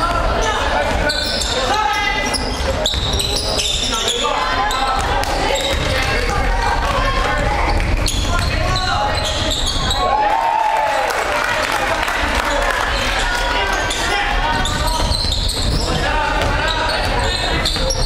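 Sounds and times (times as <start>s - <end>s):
sneakers squeaking: 0.0s - 10.3s, 12.9s - 18.0s.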